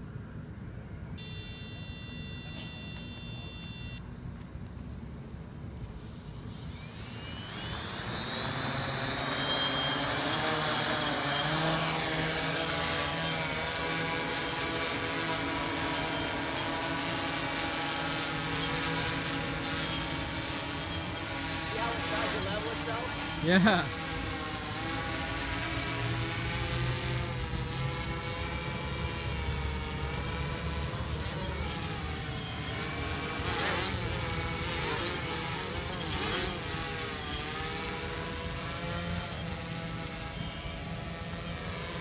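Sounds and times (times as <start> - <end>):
drone motors and propellers buzzing: 0.4 - 4.0, 5.7 - 42.0
steady electronic tone: 1.2 - 4.0, 5.8 - 42.0.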